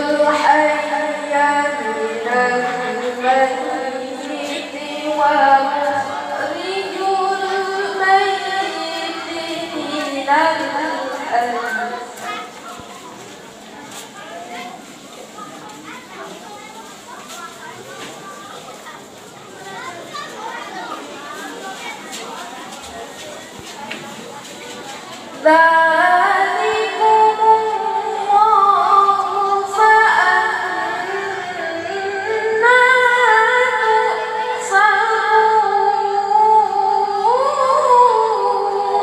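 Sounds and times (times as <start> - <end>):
girl reciting melodically: 0.0 - 13.2, 15.6 - 39.0
children chattering and calling: 0.0 - 39.0.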